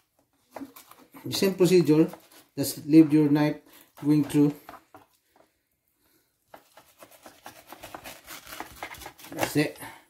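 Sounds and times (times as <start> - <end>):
knife scraping fish skin: 6.6 - 9.5.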